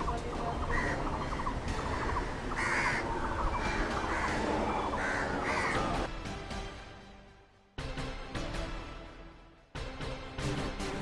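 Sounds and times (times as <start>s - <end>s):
crows cawing: 0.0s - 6.1s
small birds chirping: 0.0s - 6.1s
outdoor background noise: 0.0s - 6.6s.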